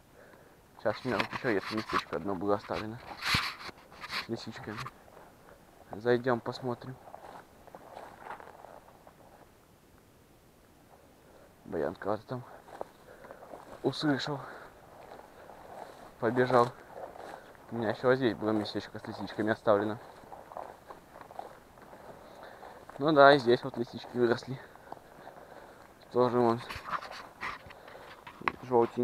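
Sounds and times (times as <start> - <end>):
footsteps swishing through grass: 6.8 - 9.5, 12.4 - 29.0.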